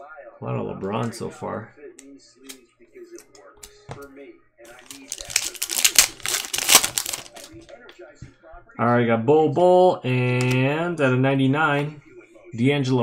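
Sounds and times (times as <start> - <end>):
plastic wrapper tearing and crinkling: 4.7 - 7.5.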